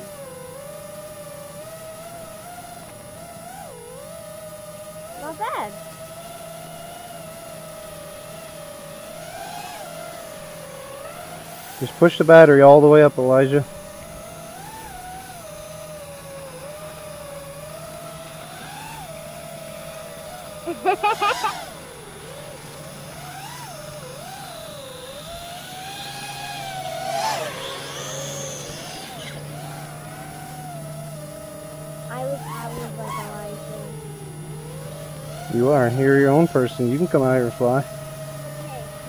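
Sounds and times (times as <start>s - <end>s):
electric motor whine: 0.0s - 39.0s
person laughing: 20.6s - 21.7s.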